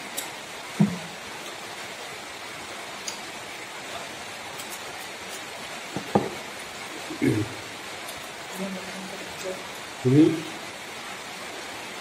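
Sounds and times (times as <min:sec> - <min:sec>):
steady background hiss: 0:00.0 - 0:12.0
faint crisp ticks: 0:03.0 - 0:03.2.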